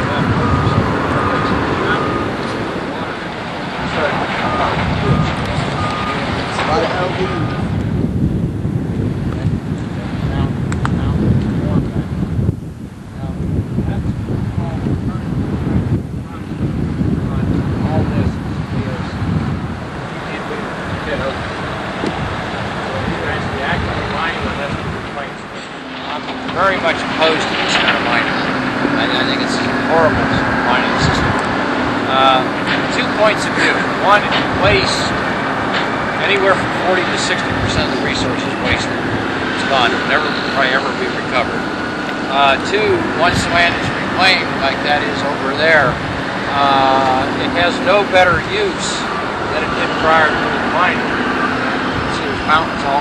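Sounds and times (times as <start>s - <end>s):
indistinct voices talking: 0.0s - 53.0s
low engine rumble: 0.0s - 53.0s
wind noise on microphone: 0.0s - 53.0s
backup alarm beeping: 0.4s - 7.7s.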